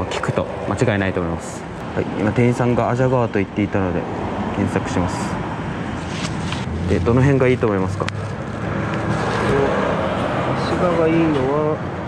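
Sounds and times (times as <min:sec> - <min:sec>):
steady rushing noise: 0:04.0 - 0:11.6.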